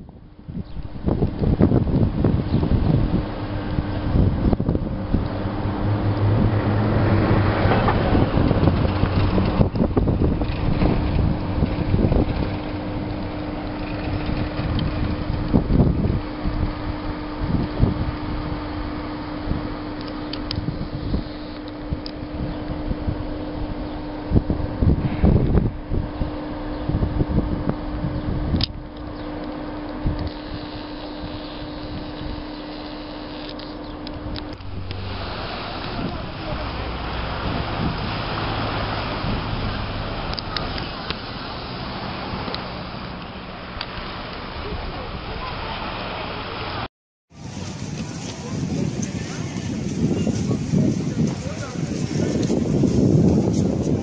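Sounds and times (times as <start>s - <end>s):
thin steady hum: 0.0s - 46.8s
wind buffeting microphone: 0.0s - 54.0s.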